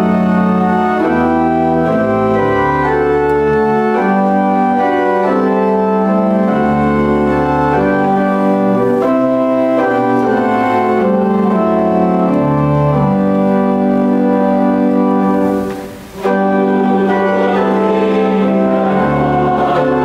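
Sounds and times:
church pipe organ playing hymn: 0.0 - 20.0.

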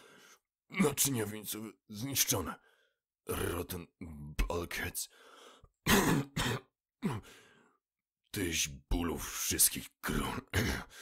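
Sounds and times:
faint breath: 0.0 - 0.4, 5.1 - 5.8, 7.2 - 7.8
man coughing: 5.9 - 7.3, 10.5 - 11.0.

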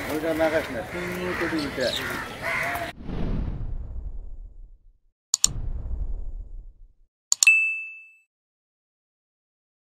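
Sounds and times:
low rumble: 3.0 - 7.1
bright bell ding: 7.4 - 8.3.

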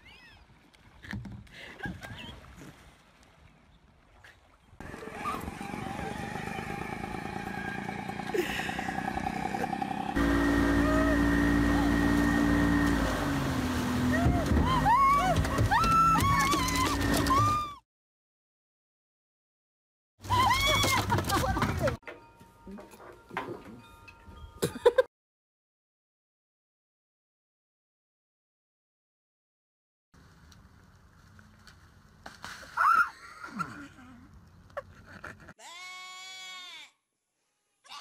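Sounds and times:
boat motor running: 4.8 - 17.7
knocks and splashes: 11.8 - 17.7.

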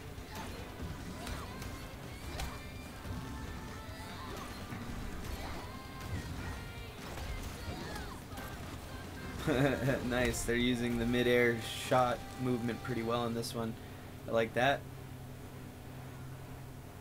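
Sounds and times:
background music: 0.0 - 14.8.

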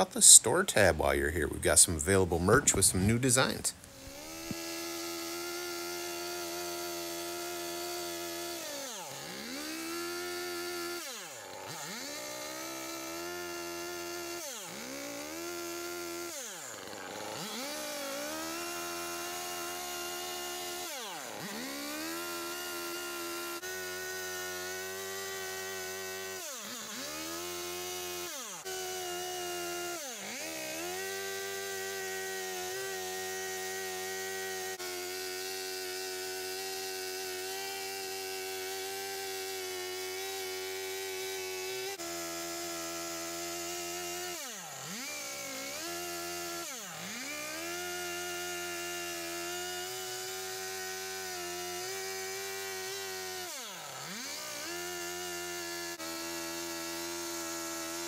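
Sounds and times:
chainsaw cutting wood: 0.0 - 58.0.

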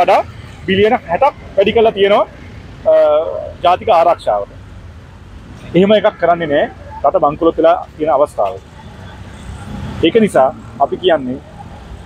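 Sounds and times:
man speaking: 0.0 - 4.6, 5.6 - 8.7, 10.0 - 11.5
road traffic rumble: 0.0 - 12.0.

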